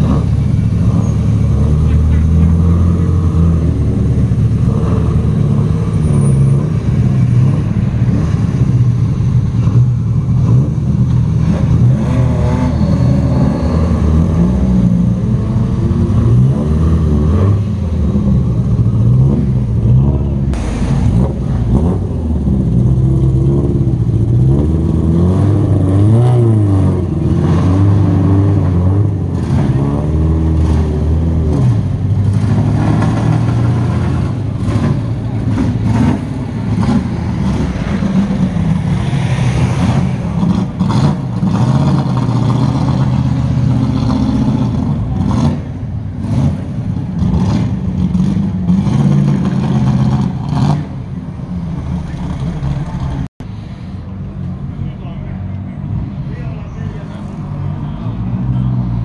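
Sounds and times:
passing road traffic: 0.0 - 59.0
rally car engines revving: 0.0 - 59.0.

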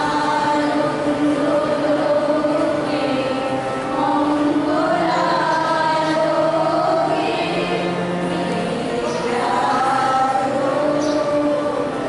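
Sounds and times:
group singing in unison: 0.0 - 12.0.

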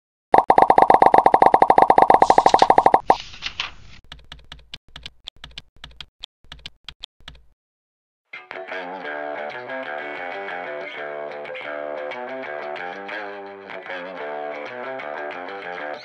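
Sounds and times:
rapid sharp clicks: 0.4 - 3.2.

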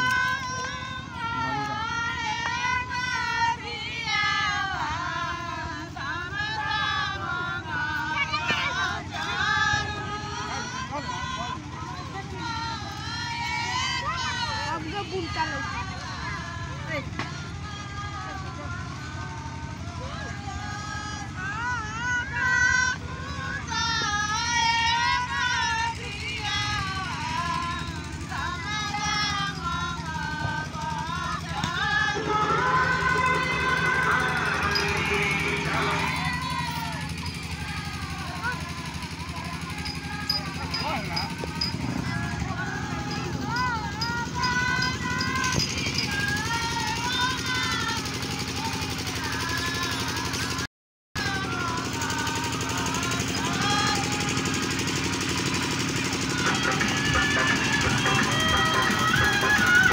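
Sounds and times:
women singing folk song: 0.0 - 50.6, 51.2 - 59.9.

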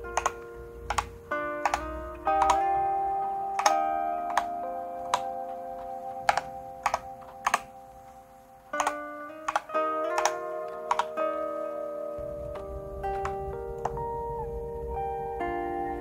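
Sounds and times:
keyboard key clicks: 0.0 - 2.8, 3.6 - 5.4, 6.2 - 7.7, 8.7 - 11.3, 12.5 - 14.0
background music with held notes: 0.0 - 16.0.

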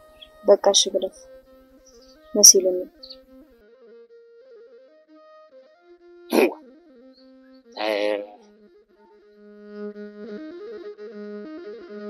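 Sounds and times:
soft background music: 0.0 - 3.4
animal calls: 7.8 - 8.4.

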